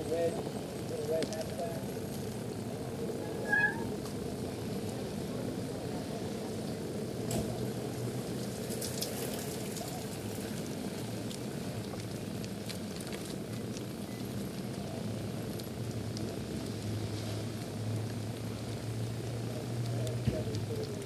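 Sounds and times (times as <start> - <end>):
bicycle rolling over wet pavement: 0.0 - 21.0
short high-pitched squeak: 3.3 - 3.9.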